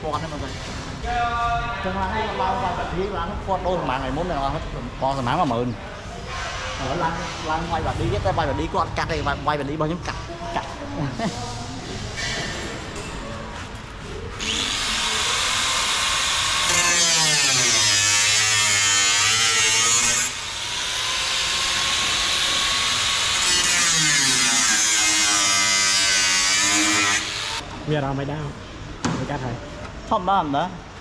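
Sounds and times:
angle grinder grinding metal: 14.4 - 27.6.

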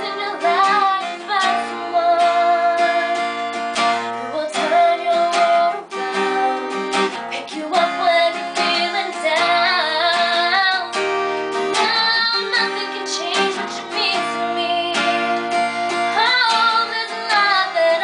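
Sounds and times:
girl singing a slow ballad: 0.0 - 18.0
strummed acoustic guitar: 0.0 - 18.0.

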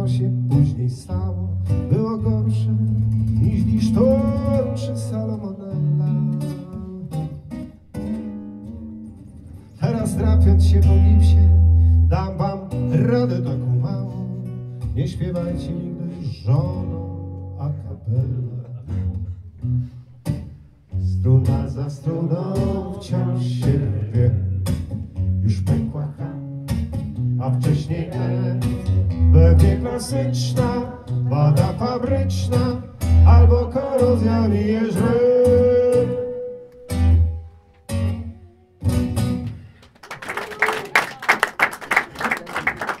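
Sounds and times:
acoustic guitar playing: 0.0 - 39.8
audience applause: 39.7 - 43.0.

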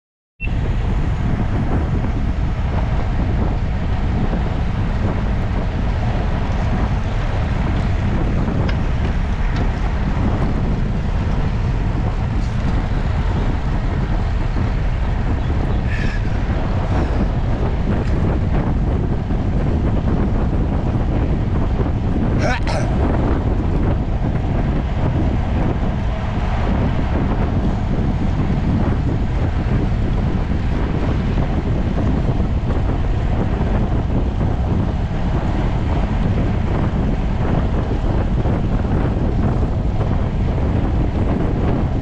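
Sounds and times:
wind buffeting microphone: 0.4 - 42.0.

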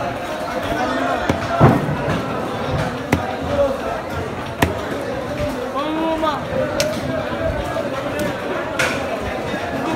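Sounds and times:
knocks on wooden chopping block: 3.1 - 3.5, 4.6 - 4.8.

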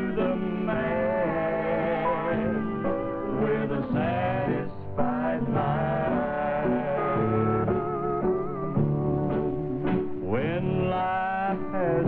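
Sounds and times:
people singing in harmony: 0.0 - 7.8.

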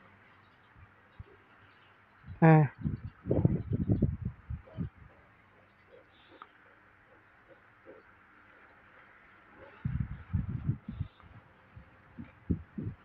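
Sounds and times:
soft low thumps: 12.1 - 13.0.

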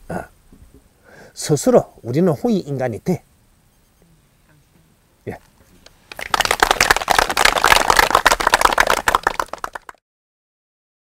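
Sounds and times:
audience applauding: 6.1 - 10.0.

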